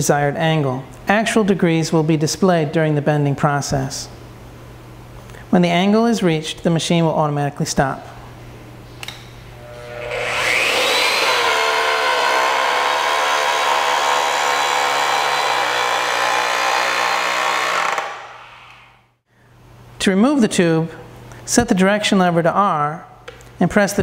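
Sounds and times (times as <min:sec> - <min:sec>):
tube bender motor whining: 0:09.6 - 0:19.0.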